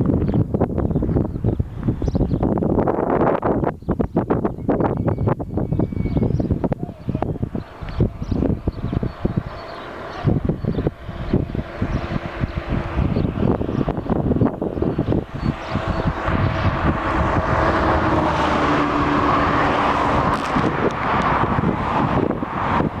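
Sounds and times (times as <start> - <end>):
passing vehicle engine and tyres: 0.0 - 23.0
wind buffeting microphone: 0.0 - 23.0.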